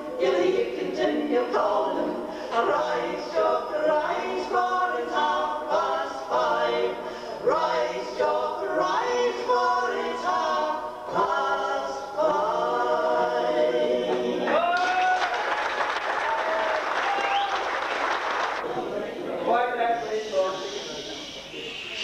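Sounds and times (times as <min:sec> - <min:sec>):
women singing in harmony: 0:00.0 - 0:14.6
audience applause: 0:14.5 - 0:18.6.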